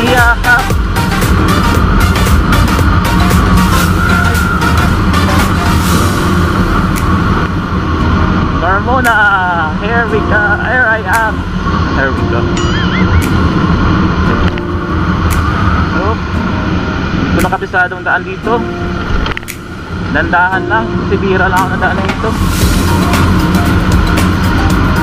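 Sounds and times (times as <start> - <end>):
wind noise on microphone: 0.0 - 10.4, 18.4 - 25.0
tire noise on wet asphalt: 0.0 - 25.0.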